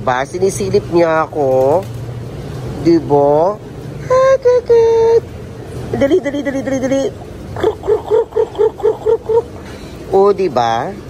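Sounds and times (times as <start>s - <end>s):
person calling pigeons: 2.9s - 11.0s.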